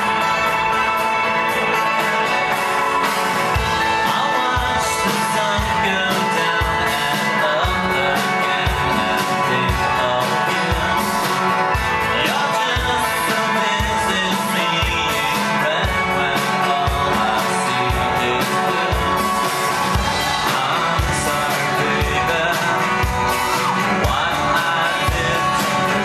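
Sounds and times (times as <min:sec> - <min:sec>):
synth-pop band playing: 0:00.0 - 0:26.0
man singing into a microphone: 0:03.7 - 0:26.0.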